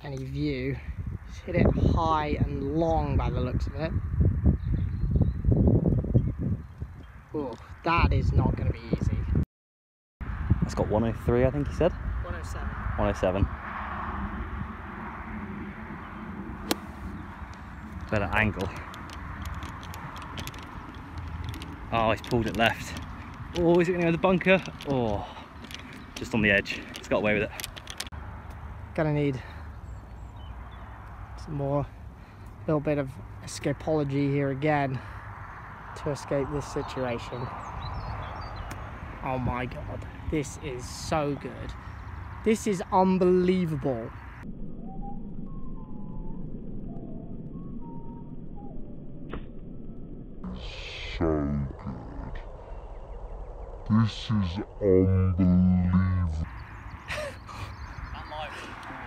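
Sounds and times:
wind rumble on microphone: 0.0 - 9.4, 10.2 - 28.5, 33.1 - 59.0
golf club striking ball: 16.6 - 21.8.

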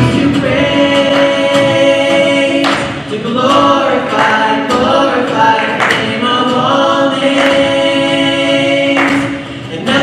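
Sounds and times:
group of voices singing: 0.0 - 10.0
man singing: 0.0 - 10.0
woman singing: 0.0 - 10.0.

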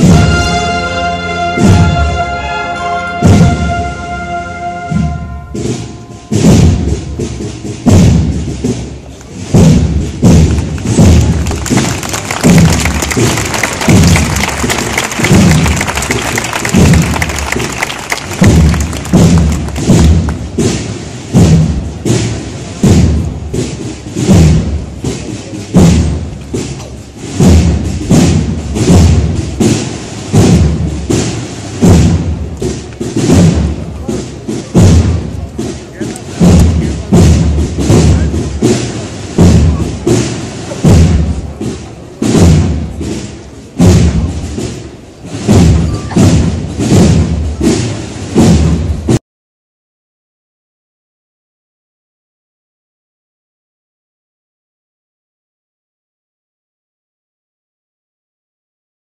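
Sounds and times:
slow heavy drum beat: 0.0 - 49.2.

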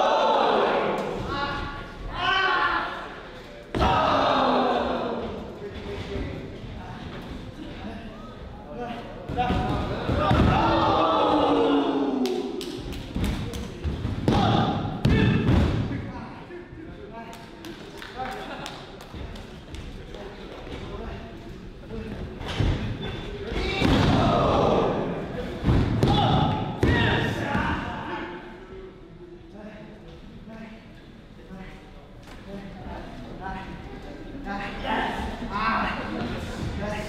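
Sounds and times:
crowd shouting: 0.0 - 3.2, 3.8 - 5.2, 10.2 - 12.6.

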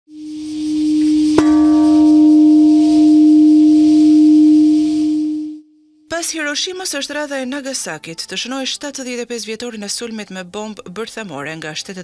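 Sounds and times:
steady high hiss: 0.1 - 5.5.

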